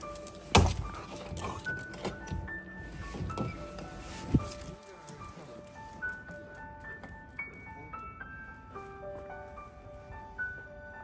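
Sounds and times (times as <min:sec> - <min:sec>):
held notes music: 0:00.0 - 0:11.0.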